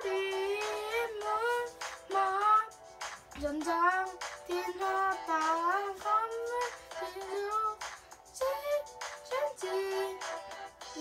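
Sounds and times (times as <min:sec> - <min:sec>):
backing music with a beat: 0:00.0 - 0:11.0.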